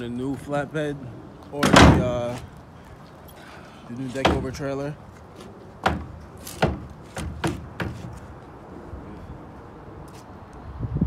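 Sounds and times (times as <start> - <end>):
wooden pallet knocking on wood: 5.8 - 8.1.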